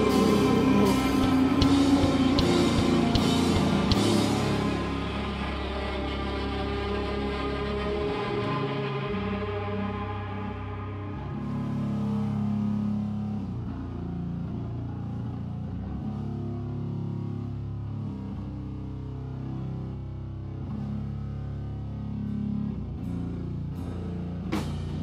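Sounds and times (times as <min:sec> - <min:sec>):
drum hits: 0:00.0 - 0:05.2
heavy metal band playing live: 0:00.0 - 0:13.0
low electric guitar chords: 0:00.0 - 0:25.0.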